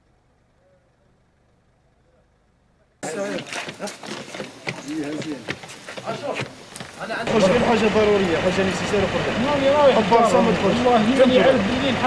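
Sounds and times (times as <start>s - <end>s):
faint low hum: 0.0s - 3.6s.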